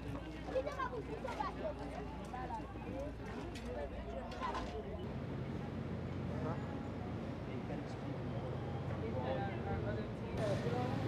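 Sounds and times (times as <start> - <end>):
distant voices: 0.2 - 11.0.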